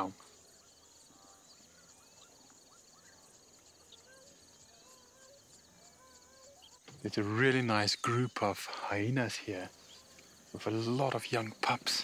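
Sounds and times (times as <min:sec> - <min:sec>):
faint wavering animal calls: 0:00.0 - 0:07.6, 0:09.7 - 0:10.7
high insect trill: 0:00.0 - 0:12.0.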